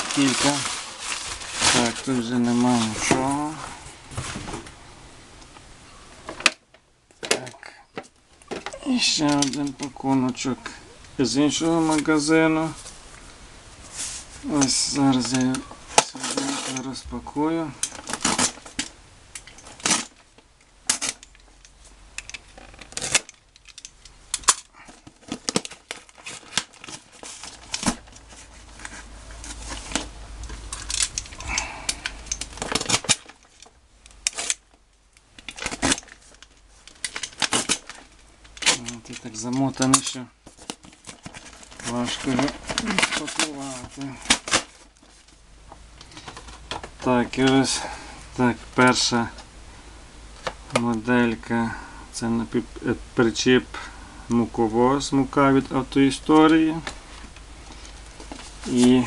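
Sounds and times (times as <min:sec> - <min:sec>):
paper crinkling and tearing: 0:00.0 - 0:03.5, 0:24.8 - 0:30.1, 0:35.5 - 0:45.3.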